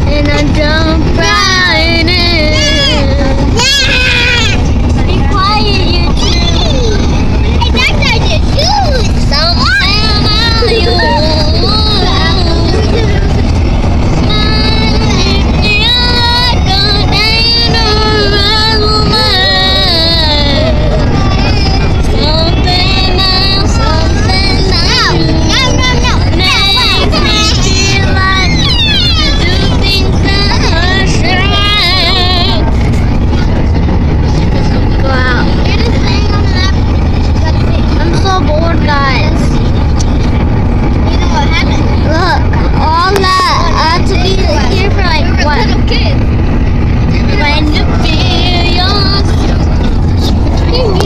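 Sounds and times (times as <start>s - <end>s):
car road and wind rumble: 0.0s - 51.0s
children shouting and squealing: 1.2s - 32.6s.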